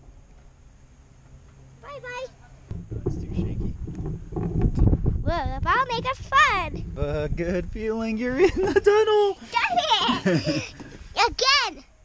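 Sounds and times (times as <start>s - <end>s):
wind and motion noise: 2.7s - 8.4s.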